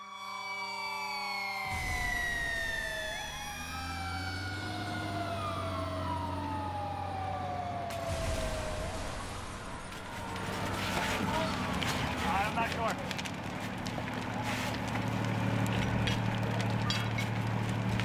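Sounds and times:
fire engine siren wailing: 0.0 - 18.0
low engine rumble: 1.7 - 18.0
rush of noise: 7.9 - 11.8.

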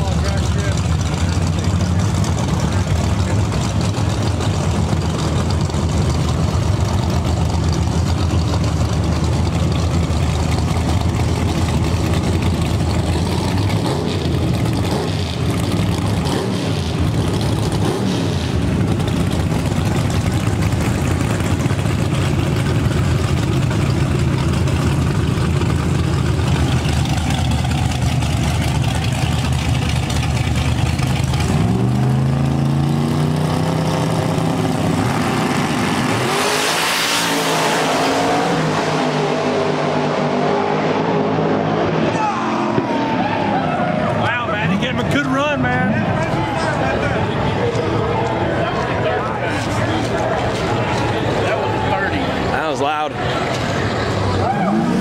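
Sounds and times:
drag race car engines idling: 0.0 - 36.3, 38.0 - 55.0
race cars accelerating: 0.0 - 55.0.

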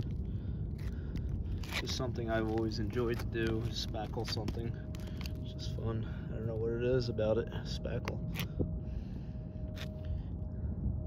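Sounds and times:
steady low rumble: 0.0 - 11.0
spatula scraping sealant on shingles: 1.6 - 4.6.

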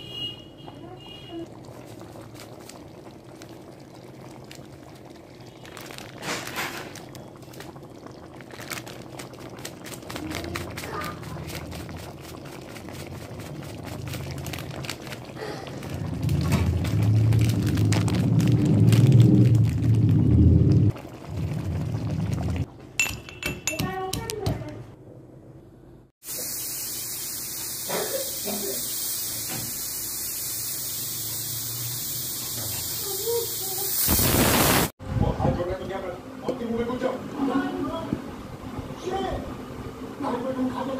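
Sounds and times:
curry bubbling in a pan: 0.7 - 22.8
low rumbling noise: 15.6 - 22.7.

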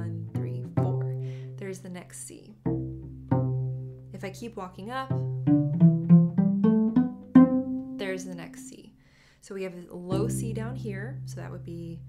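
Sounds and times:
cello plucked pizzicato: 0.0 - 9.0, 10.0 - 12.0.

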